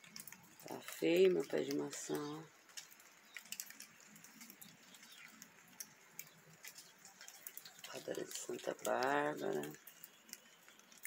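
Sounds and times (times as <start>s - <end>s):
water dripping: 0.0s - 11.0s.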